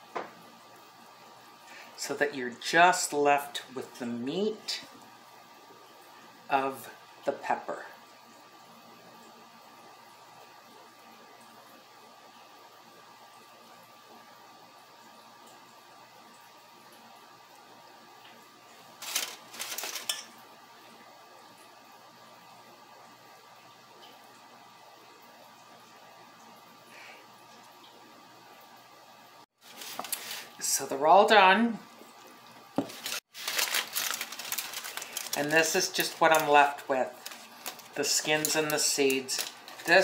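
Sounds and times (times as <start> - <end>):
faint steady hum: 0.0 - 40.0.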